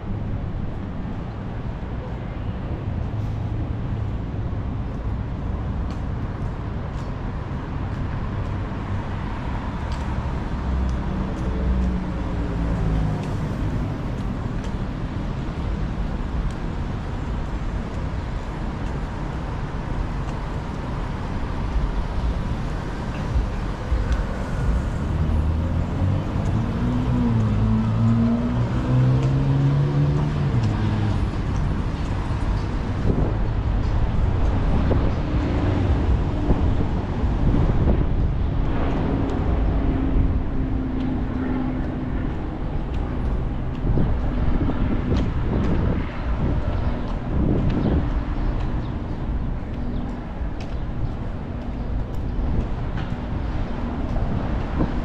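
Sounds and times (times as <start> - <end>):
steady engine hum: 0.0 - 55.0
traffic rumble: 0.0 - 55.0.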